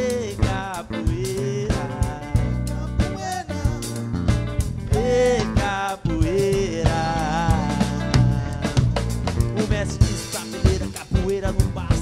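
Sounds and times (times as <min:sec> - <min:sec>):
drum kit steady beat: 0:00.0 - 0:12.0
electric guitar: 0:00.0 - 0:12.0.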